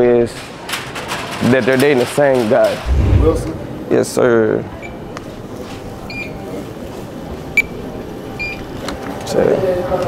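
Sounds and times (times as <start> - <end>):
airport terminal hum: 2.8 - 10.0.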